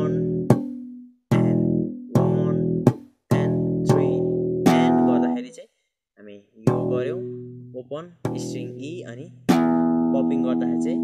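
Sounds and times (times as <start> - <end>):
slap bass guitar notes: 0.0 - 5.5, 6.6 - 11.0.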